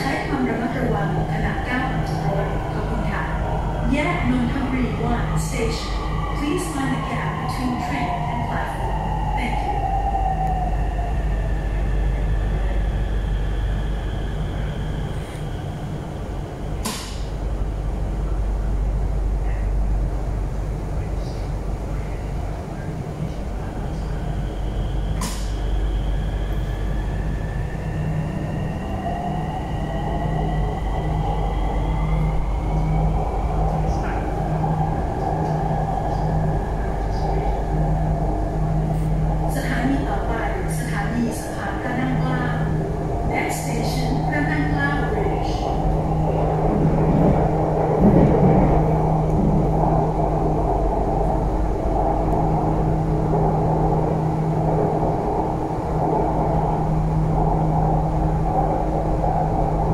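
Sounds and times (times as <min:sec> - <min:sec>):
train rumble with electric motor whine: 0:00.0 - 0:59.9.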